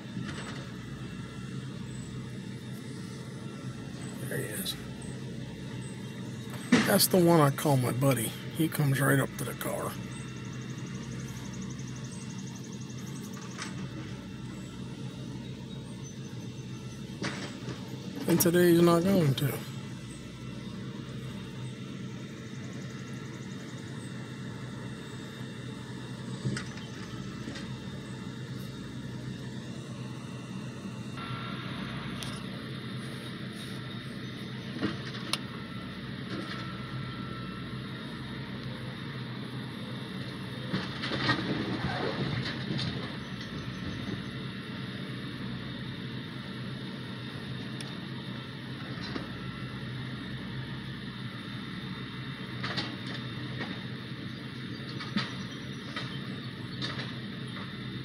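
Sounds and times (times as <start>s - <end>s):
engine running steadily: 0.0s - 58.0s
machinery clatter: 5.8s - 14.1s, 16.8s - 19.9s, 40.6s - 44.3s, 54.8s - 57.7s.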